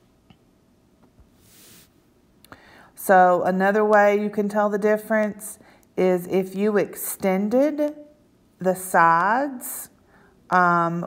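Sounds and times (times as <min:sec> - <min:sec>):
faint breathing: 0:02.5 - 0:03.0, 0:10.0 - 0:10.5.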